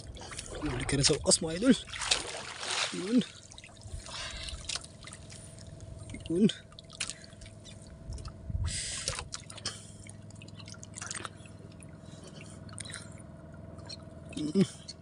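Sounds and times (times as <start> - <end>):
faint steady hum: 0.0 - 15.0
water dripping and splashing: 1.8 - 3.8.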